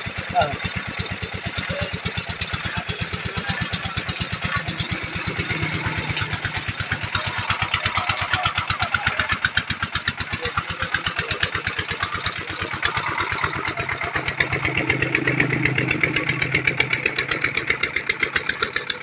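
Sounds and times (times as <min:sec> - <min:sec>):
engine running steadily: 0:00.0 - 0:19.0.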